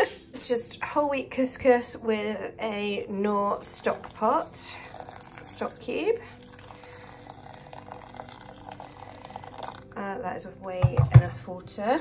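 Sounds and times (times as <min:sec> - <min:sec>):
water pouring into glass bowl: 0:03.2 - 0:10.0.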